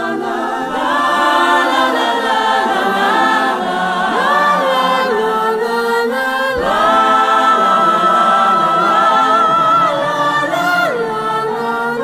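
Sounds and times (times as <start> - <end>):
voices singing in harmony: 0.0 - 12.0.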